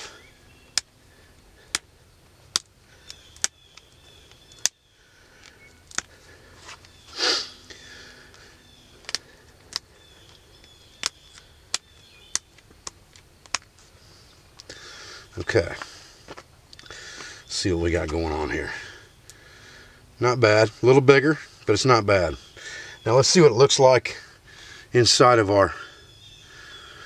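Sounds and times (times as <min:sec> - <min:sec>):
stone flaking clicks: 0:00.7 - 0:00.9, 0:01.6 - 0:01.9, 0:02.5 - 0:04.8, 0:05.4 - 0:06.2, 0:09.0 - 0:13.8
short hiss: 0:07.1 - 0:07.6.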